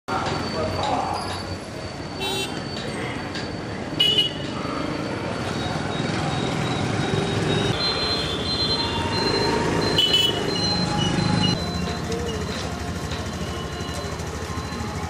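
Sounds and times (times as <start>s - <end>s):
traffic noise: 0.1s - 15.0s.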